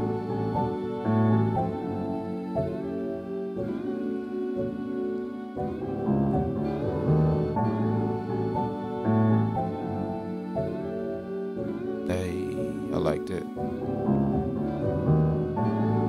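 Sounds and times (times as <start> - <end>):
wavering piano chords: 0.0 - 16.0.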